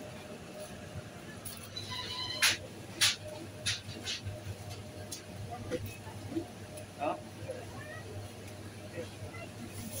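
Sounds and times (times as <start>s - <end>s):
indistinct chatter: 5.0s - 10.0s.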